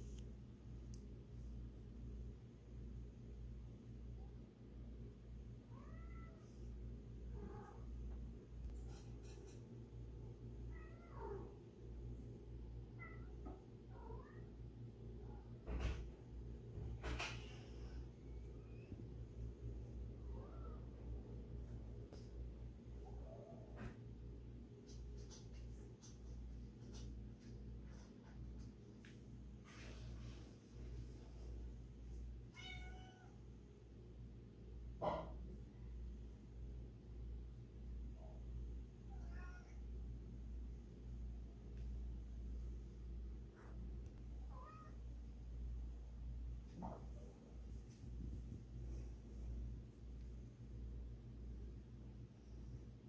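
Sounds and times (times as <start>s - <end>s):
cat meowing: 5.7s - 6.4s, 32.5s - 33.4s, 39.1s - 39.8s, 44.4s - 45.0s.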